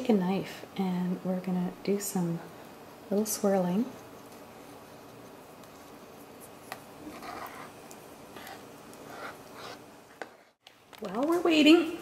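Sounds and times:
knife swirling through batter: 4.9s - 10.6s.

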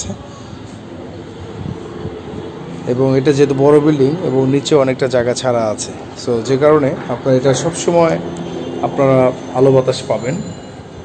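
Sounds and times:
distant city traffic hum: 0.0s - 11.0s.

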